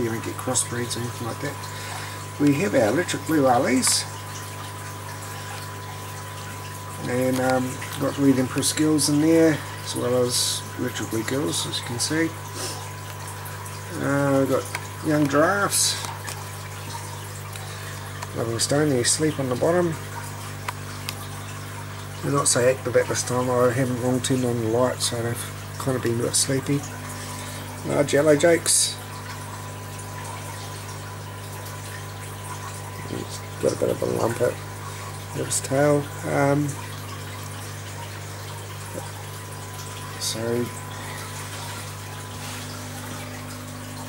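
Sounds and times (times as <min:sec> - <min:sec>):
running water trickling: 0:00.0 - 0:44.0
tank pumps humming: 0:00.0 - 0:44.0.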